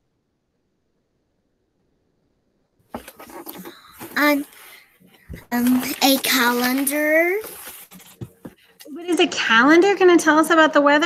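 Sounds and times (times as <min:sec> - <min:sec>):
microphone handling clicks and rustles: 0:02.9 - 0:08.9
room noise: 0:02.9 - 0:10.0.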